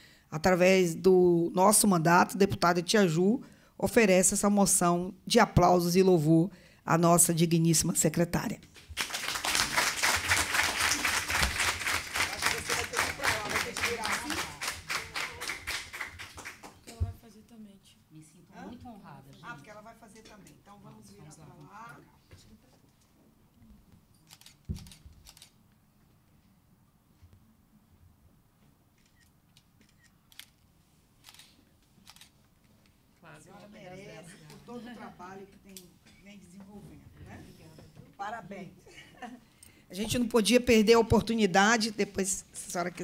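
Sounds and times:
crowd applauding: 8.9 - 16.9
camera shutter clicks: 24.3 - 25.5, 31.2 - 32.3.

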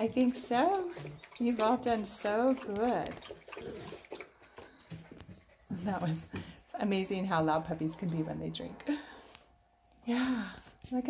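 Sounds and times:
puppies lapping water: 0.0 - 9.2.

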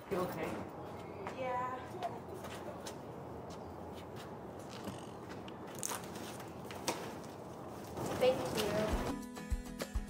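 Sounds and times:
books and papers tapping and rustling: 4.7 - 9.1.

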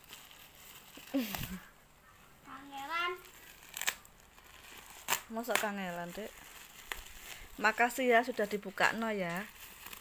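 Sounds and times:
sharp plastic crackle: 0.0 - 1.6, 2.7 - 10.0
plastic wrapping rustling: 0.0 - 1.7, 2.6 - 10.0.

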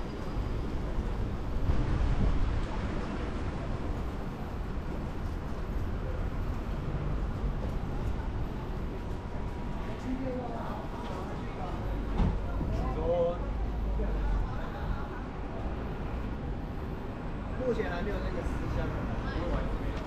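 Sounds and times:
city street rumble: 0.0 - 20.0.

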